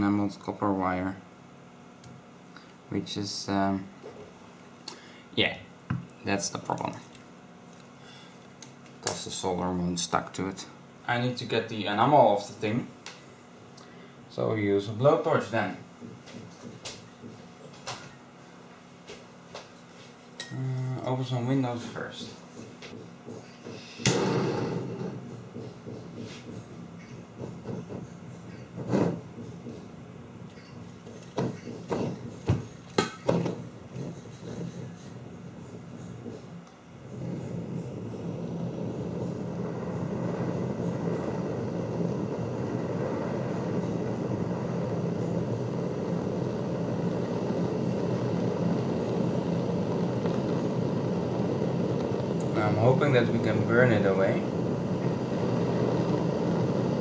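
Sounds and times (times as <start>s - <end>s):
blowtorch flame rushing: 23.6s - 29.8s, 31.0s - 57.0s.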